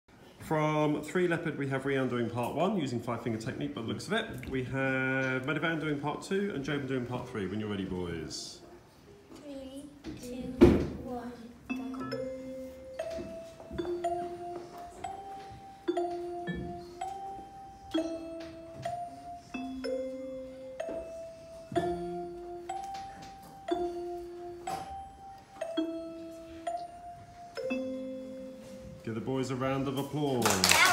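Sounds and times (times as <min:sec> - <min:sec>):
electronic keyboard gamelan music: 0:11.7 - 0:30.9.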